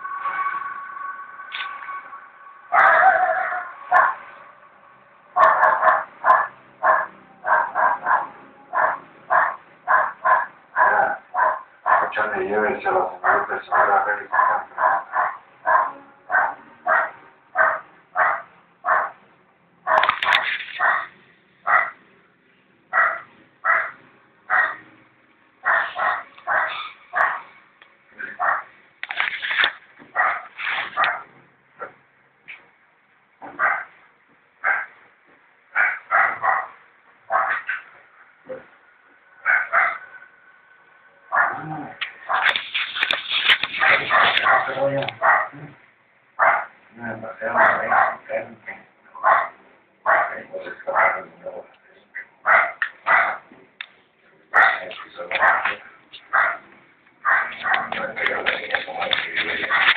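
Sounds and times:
dog barking: 0:02.7 - 0:04.4, 0:05.4 - 0:12.3, 0:13.2 - 0:19.2, 0:19.9 - 0:22.0, 0:22.9 - 0:24.9, 0:25.6 - 0:27.5, 0:28.2 - 0:28.7, 0:30.1 - 0:31.3, 0:33.5 - 0:34.0, 0:34.6 - 0:35.0, 0:35.7 - 0:37.9, 0:39.4 - 0:40.2, 0:41.3 - 0:42.6, 0:43.7 - 0:45.8, 0:46.4 - 0:46.8, 0:47.4 - 0:48.4, 0:49.2 - 0:51.4, 0:52.2 - 0:53.5, 0:54.5 - 0:58.1, 0:59.6 - 0:59.9.

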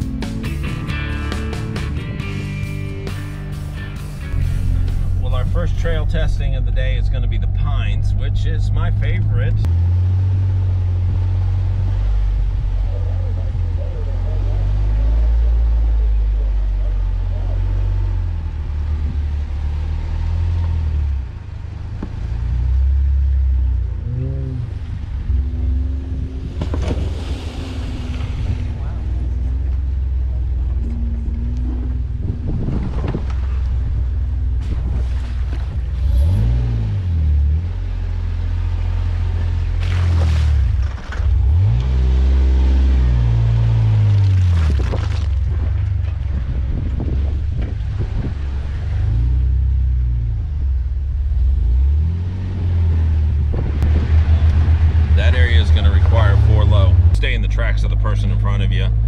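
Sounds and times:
engine revving at crawling speed: 0:00.0 - 0:59.0.

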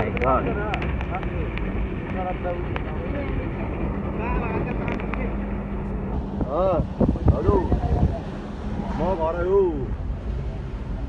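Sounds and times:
wind rumble on microphone: 0:00.0 - 0:09.0.

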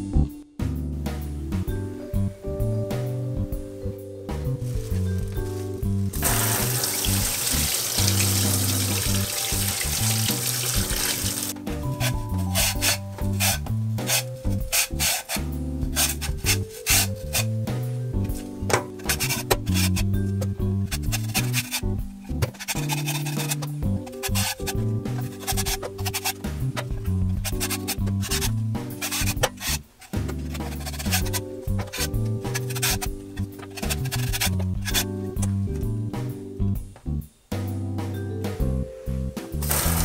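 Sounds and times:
background music: 0:00.0 - 0:40.0
tap water running into sink: 0:06.2 - 0:11.6
vegetable peeler scraping: 0:06.2 - 0:35.1, 0:39.6 - 0:40.0.

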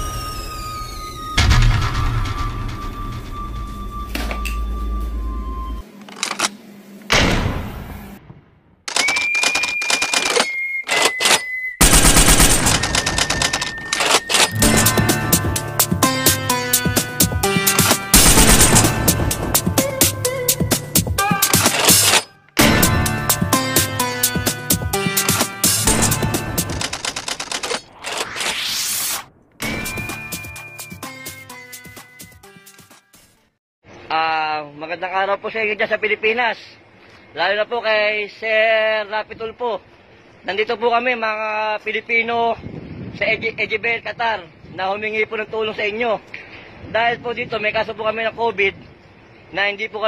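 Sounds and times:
typewriter-like clicks: 0:08.9 - 0:11.4, 0:12.0 - 0:14.6, 0:21.5 - 0:22.3, 0:25.2 - 0:28.3
rapid rattling clicks: 0:11.9 - 0:14.5, 0:26.6 - 0:27.9
music: 0:14.5 - 0:26.8, 0:29.6 - 0:33.6
rising whoosh: 0:27.9 - 0:30.0.

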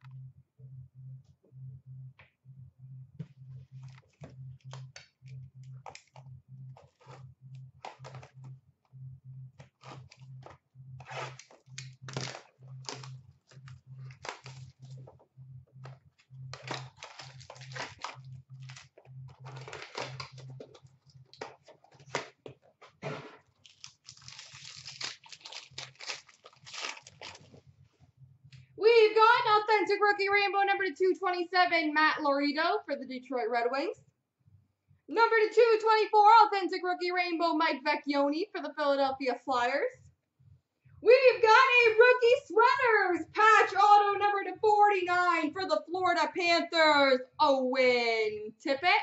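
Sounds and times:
packaging crinkling: 0:09.6 - 0:15.2, 0:16.6 - 0:22.6, 0:23.4 - 0:27.6
card packs being torn open: 0:11.1 - 0:13.1, 0:14.1 - 0:15.0, 0:16.6 - 0:22.4, 0:23.5 - 0:27.5.

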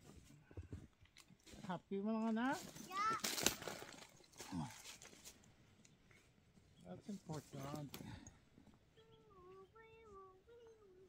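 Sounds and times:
child's faint singsong voice: 0:08.9 - 0:11.0.

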